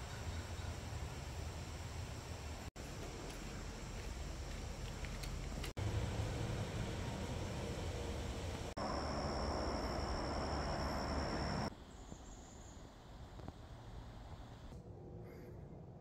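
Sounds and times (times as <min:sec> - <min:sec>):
woodland ambience: 0:00.0 - 0:15.6.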